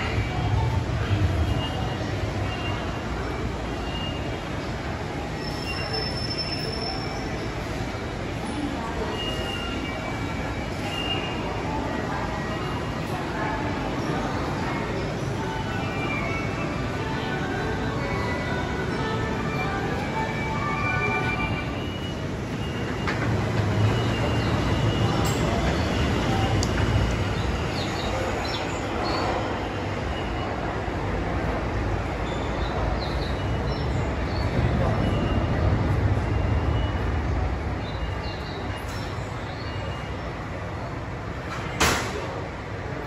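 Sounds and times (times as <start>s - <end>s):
subway train rumbling: 0.0s - 43.0s.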